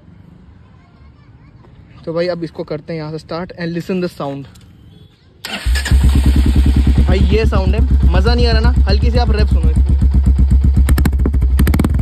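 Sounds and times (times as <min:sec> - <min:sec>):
motorcycle engine cranking: 0:05.4 - 0:07.3
motorcycle engine idling: 0:05.5 - 0:12.0.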